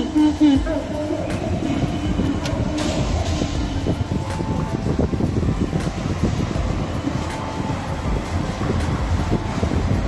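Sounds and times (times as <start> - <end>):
car road rumble: 0.0 - 10.0.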